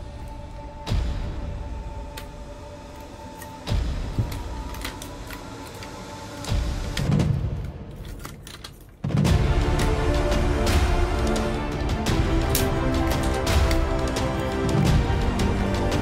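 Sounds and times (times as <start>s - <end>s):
background music with held tones: 0.0s - 16.0s
plastic toy parts clicking: 2.9s - 9.0s.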